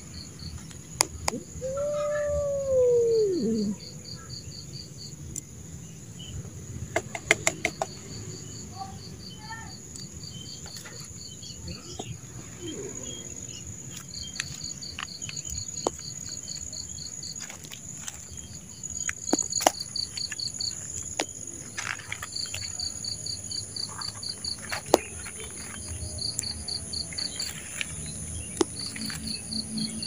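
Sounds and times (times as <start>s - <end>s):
insects chirping: 0.0s - 30.0s.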